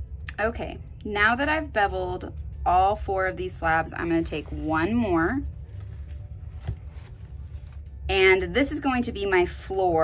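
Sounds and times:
low steady hum: 0.0 - 10.0
paper towel rustling: 5.7 - 7.9.

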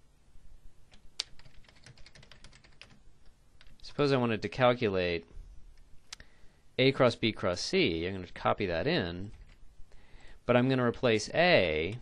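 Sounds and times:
typing on computer keyboard: 0.9 - 3.0.

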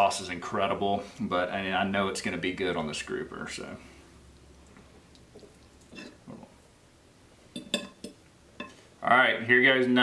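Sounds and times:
fork clinking on a plate: 7.6 - 8.8.

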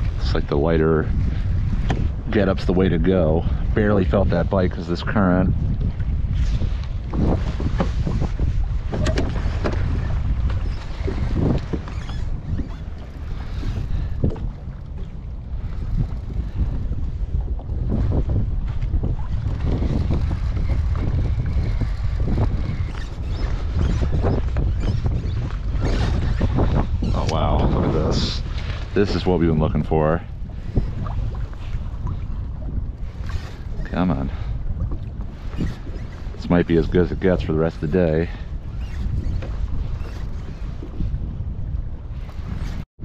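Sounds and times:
water slapping hull: 0.0 - 42.8
wind buffeting microphone: 0.0 - 43.0.

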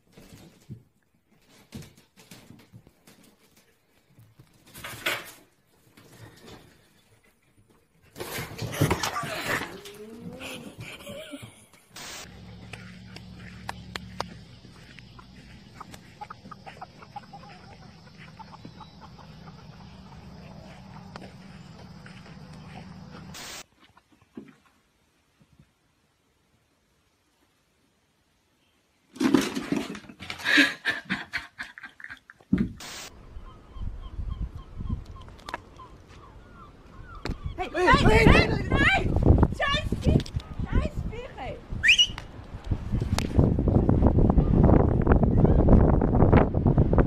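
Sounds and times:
chickens clucking: 6.0 - 24.2
steady low hum: 10.1 - 23.4
wind buffeting microphone: 33.2 - 35.6, 36.9 - 47.0.

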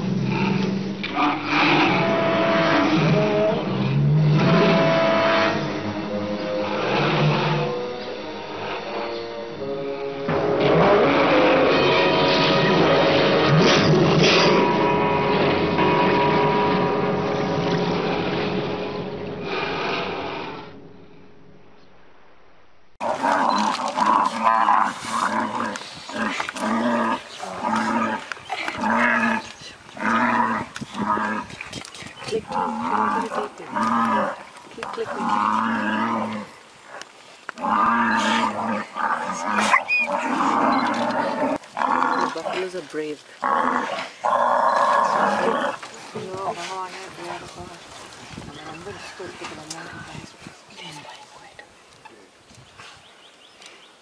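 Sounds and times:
tiger growling: 0.0 - 20.8, 23.0 - 51.1.

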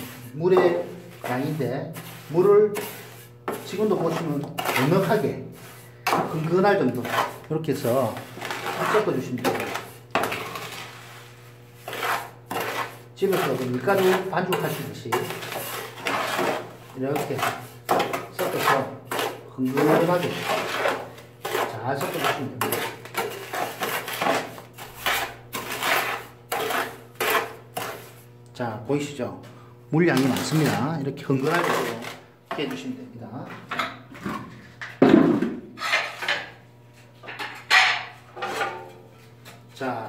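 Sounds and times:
trowel scraping wet mortar: 0.0 - 28.2, 30.1 - 33.0.

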